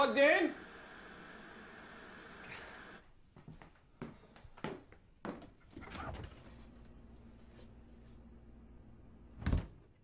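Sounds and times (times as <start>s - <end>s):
door shutting with heavy thump: 9.4s - 9.8s.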